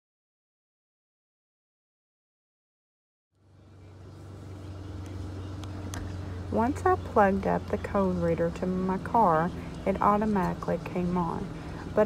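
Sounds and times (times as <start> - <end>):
car engine idling hum: 3.4 - 12.0.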